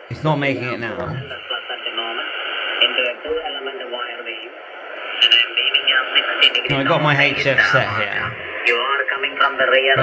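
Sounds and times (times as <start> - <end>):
thin radio speech: 0.4 - 10.0.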